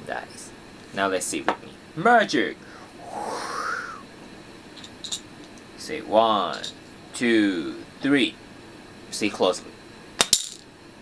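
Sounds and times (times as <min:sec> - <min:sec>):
breathy mouth whoosh: 0:02.7 - 0:04.1.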